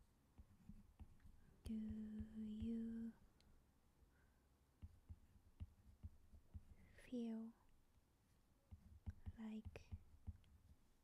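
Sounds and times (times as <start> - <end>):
stylus tapping on glass screen: 0.4 - 3.0, 4.8 - 6.9, 8.7 - 10.8
woman's soft voice: 1.5 - 3.3, 6.8 - 7.7, 9.2 - 10.0.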